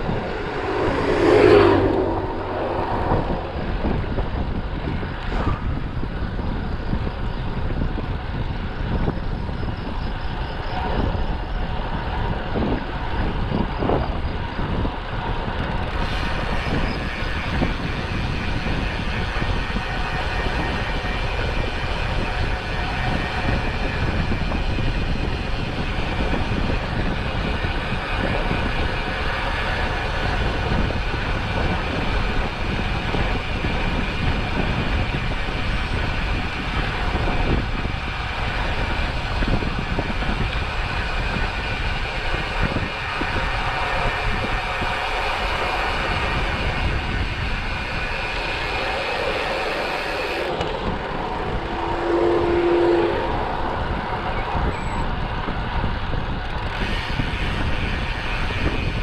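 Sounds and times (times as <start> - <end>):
passing vehicle hum: 0.0 - 8.9, 34.2 - 57.1
wind buffeting microphone: 0.0 - 59.0.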